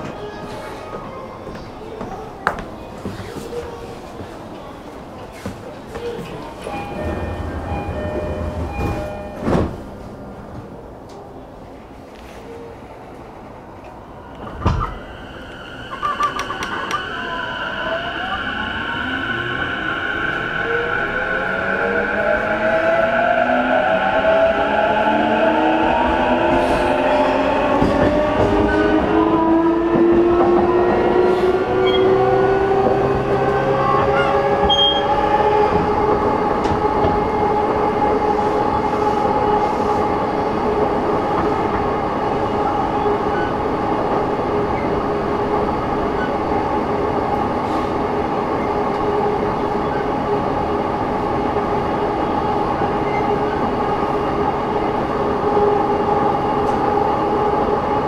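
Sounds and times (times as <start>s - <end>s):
rail and wheel noise: 0.0s - 58.0s.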